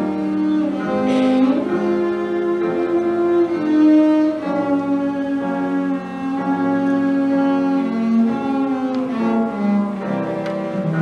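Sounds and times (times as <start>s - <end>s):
bowed cello notes: 0.0s - 11.0s.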